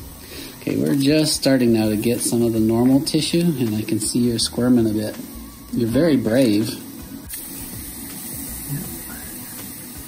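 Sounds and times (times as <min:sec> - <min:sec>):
liquid nitrogen hissing: 0:00.0 - 0:10.0.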